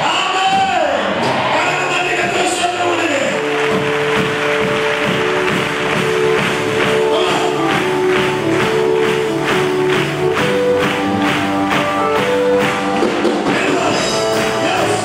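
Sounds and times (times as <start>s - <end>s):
held keyboard notes: 2.2s - 15.0s
steady percussion beat: 2.2s - 15.0s.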